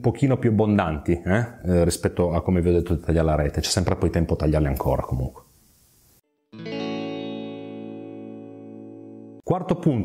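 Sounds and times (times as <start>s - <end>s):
guitar chord ringing: 6.5s - 9.5s.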